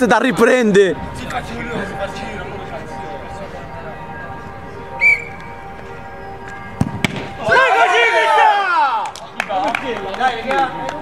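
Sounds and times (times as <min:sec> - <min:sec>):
men shouting: 0:07.4 - 0:09.0.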